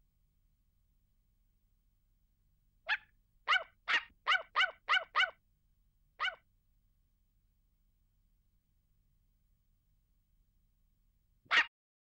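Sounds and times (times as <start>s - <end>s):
small dog yapping: 2.9s - 5.4s, 6.2s - 6.4s, 11.5s - 11.7s.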